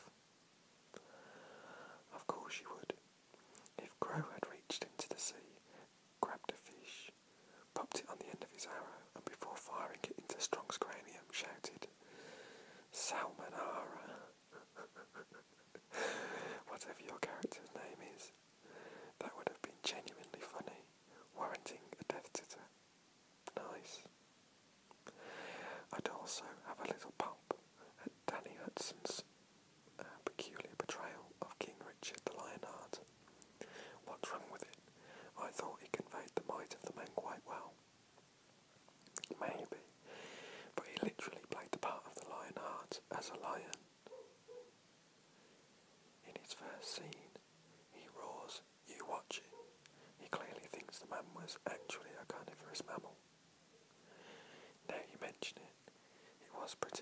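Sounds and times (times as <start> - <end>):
man whispering: 1.8 - 12.0, 12.9 - 15.2, 16.0 - 22.7, 23.4 - 24.1, 25.0 - 29.3, 30.0 - 33.1, 33.7 - 37.8, 39.2 - 40.0, 40.7 - 44.2, 46.2 - 53.2, 54.8 - 57.0
small mouth clicks: 39.0 - 39.4.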